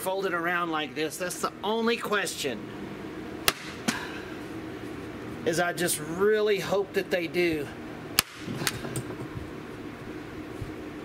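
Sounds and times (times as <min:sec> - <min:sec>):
staple gun snapping: 0:03.5 - 0:03.8, 0:08.2 - 0:08.8.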